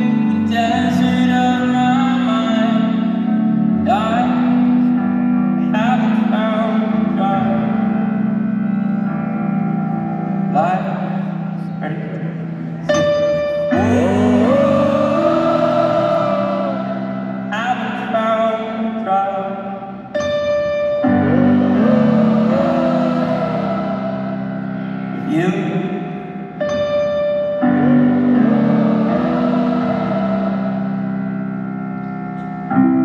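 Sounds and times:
person singing: 0.0 - 9.2, 10.5 - 20.1, 21.0 - 26.4, 27.6 - 31.6
piano chords: 0.0 - 33.0.

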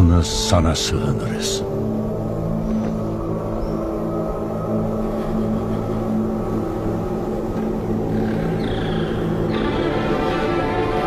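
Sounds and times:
low sustained film score music: 0.0 - 11.0.

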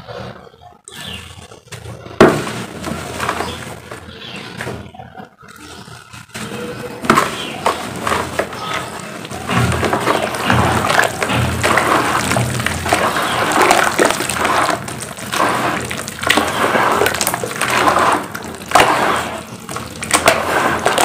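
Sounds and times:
hands squelching wet cement: 2.3 - 4.2, 5.8 - 21.0.

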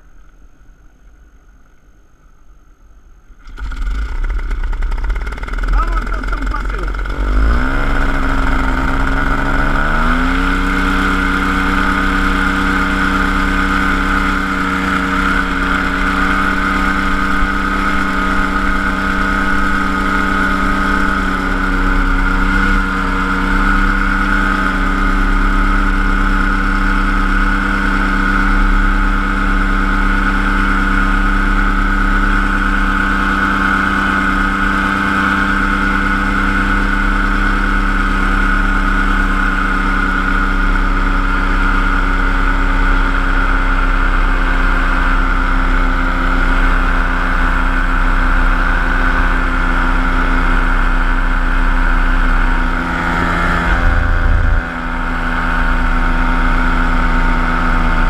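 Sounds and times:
paramotor engine and propeller: 3.3 - 58.0.

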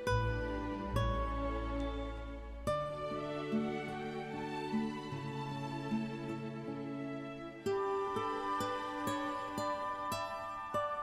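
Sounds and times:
slow acoustic guitar music: 0.0 - 11.0.

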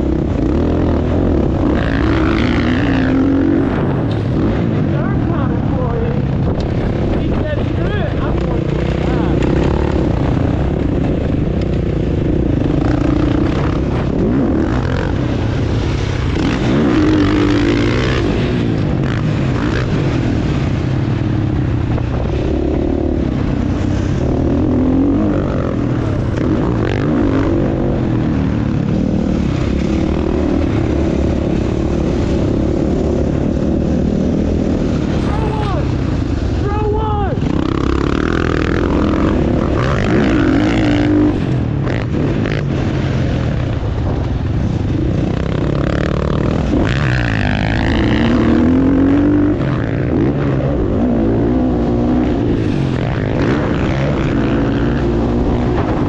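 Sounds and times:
dirt bike engine revving: 0.0 - 43.7, 44.7 - 56.0.

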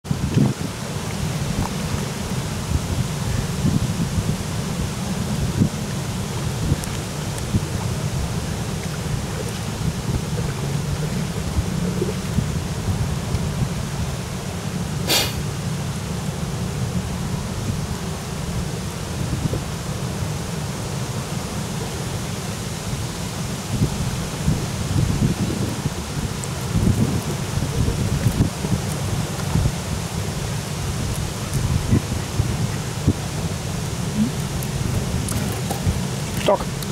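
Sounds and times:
wind buffeting microphone: 0.0 - 14.2, 23.7 - 36.9
faint hiss of open water: 0.1 - 36.9.

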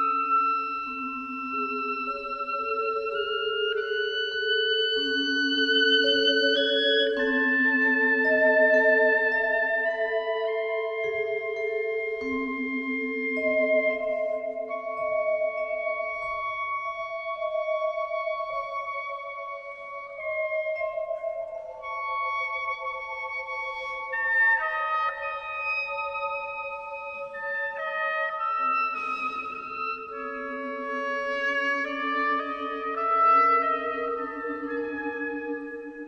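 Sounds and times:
oboe: 0.0 - 36.0
string orchestra: 0.0 - 36.0.

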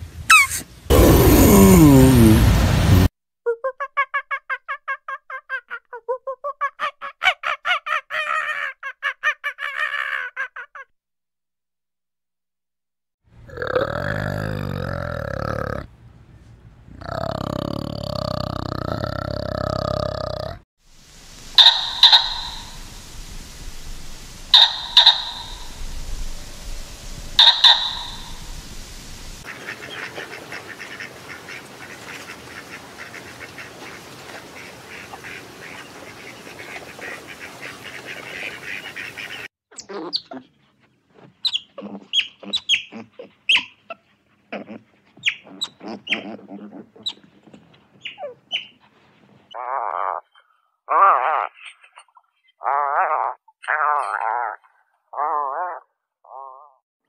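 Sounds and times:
short high chirps: 0.3 - 0.6, 21.6 - 22.9, 27.4 - 28.4
short sharp animal calls: 0.3 - 1.6, 21.5 - 23.2, 24.2 - 26.0, 27.2 - 28.8
long animal calls: 0.3 - 2.4, 21.4 - 29.5, 49.5 - 52.0, 52.6 - 56.8
steady chirring: 21.3 - 29.4.

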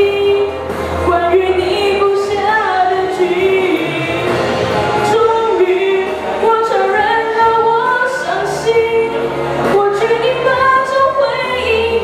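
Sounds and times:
girl singing pop song: 0.0 - 12.0.

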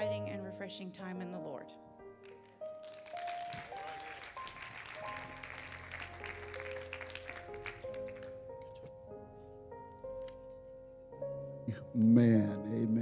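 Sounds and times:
soft keyboard music: 0.0 - 13.0
congregation applauding: 2.2 - 8.7.

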